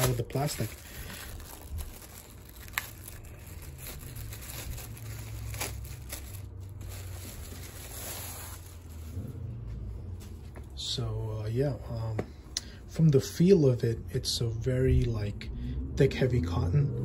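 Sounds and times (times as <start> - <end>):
plastic bag crinkling: 0.0 - 9.3.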